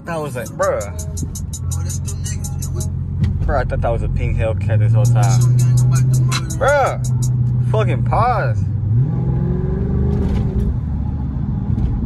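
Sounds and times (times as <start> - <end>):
car engine low drone: 0.0 - 12.0
music with quick ticking beat: 0.4 - 2.9, 5.0 - 7.4.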